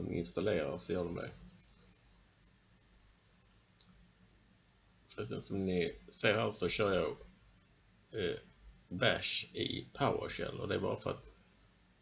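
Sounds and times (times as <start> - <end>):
faint click: 3.8 - 4.0.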